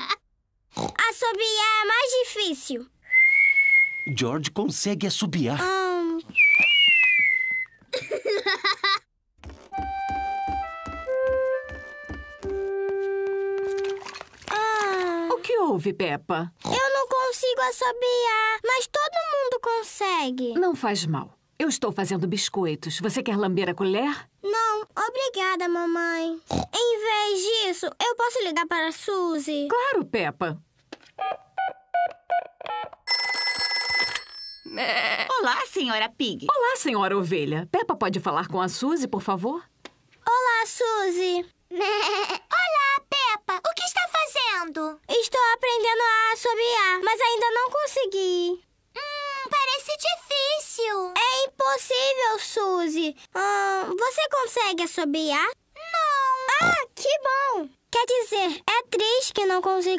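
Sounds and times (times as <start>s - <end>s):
cartoon whistle: 6.4s - 7.8s
cartoon music cue: 9.8s - 14.0s
telephone bell ringing: 33.1s - 34.8s.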